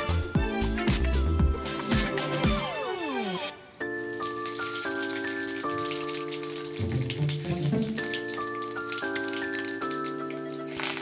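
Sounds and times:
background music chords: 0.0s - 11.0s
spices sizzling in hot oil: 3.9s - 6.5s.

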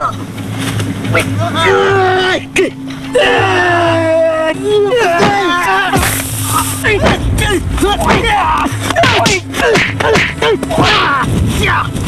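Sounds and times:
steady low hum: 0.0s - 12.0s
men crying out and straining: 1.5s - 11.9s.

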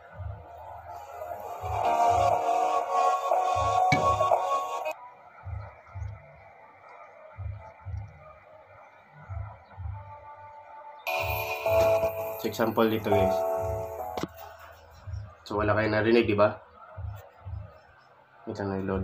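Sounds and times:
music with low beat from earphone: 0.0s - 19.0s.

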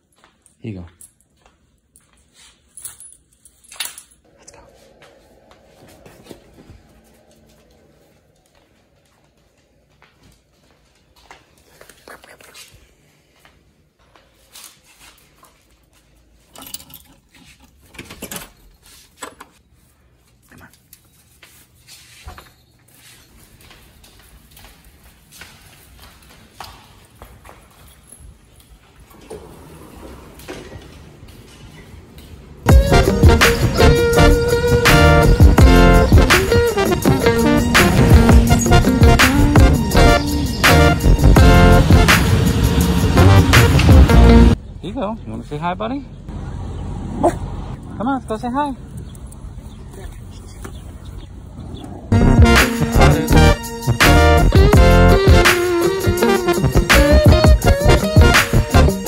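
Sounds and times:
footsteps on hard floor: 4.6s - 11.8s, 13.3s - 16.3s, 21.3s - 33.7s
dogs scuffling on floor: 20.1s - 31.8s.

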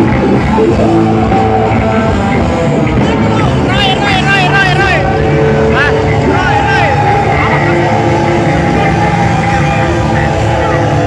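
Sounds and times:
loud live rock band: 0.0s - 11.0s.

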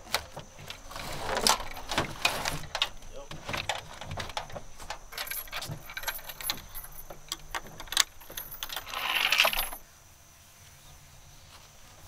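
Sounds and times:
metal bolts clinking on wood: 0.0s - 9.8s.

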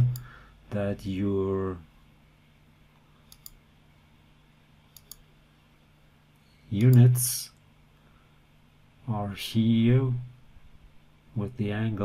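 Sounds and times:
computer mouse clicks: 0.0s - 0.3s, 3.2s - 3.6s, 4.9s - 5.2s
faint low hum: 0.0s - 12.0s.

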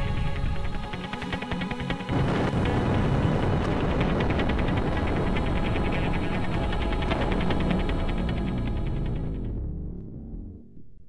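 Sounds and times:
explosion bang and rumble: 2.1s - 11.0s.

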